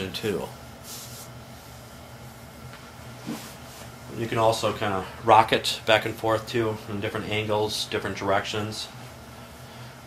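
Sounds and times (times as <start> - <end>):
steady hiss: 0.0 - 2.4.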